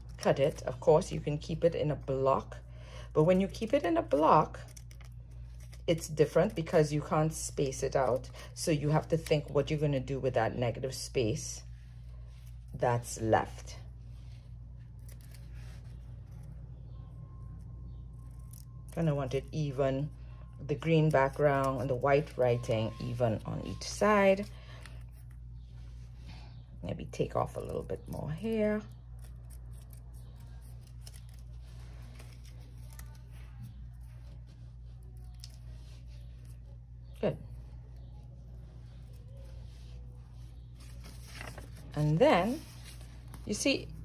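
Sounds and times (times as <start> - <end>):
steady low hum: 0.0 - 44.0
scissors snipping paper: 3.2 - 9.8, 20.7 - 25.4, 27.4 - 34.3.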